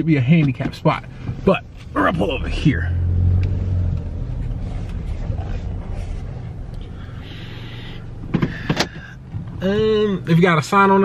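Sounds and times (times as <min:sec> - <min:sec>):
car engine and tyre noise: 0:00.0 - 0:11.0.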